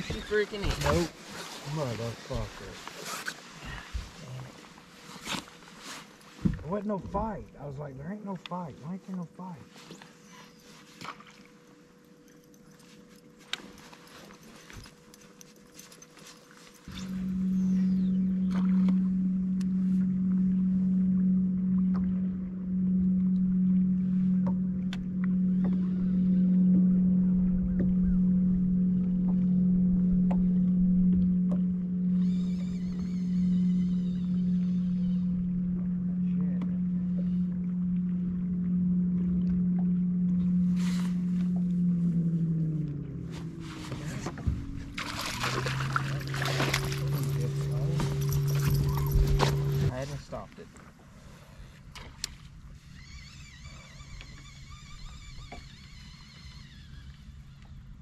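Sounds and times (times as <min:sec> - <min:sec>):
electric trolling motor humming: 0:00.0 - 0:58.0.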